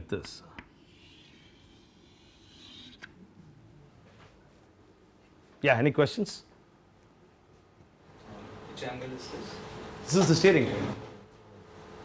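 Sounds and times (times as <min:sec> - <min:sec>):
chalk scraping on blackboard: 0:00.8 - 0:03.1.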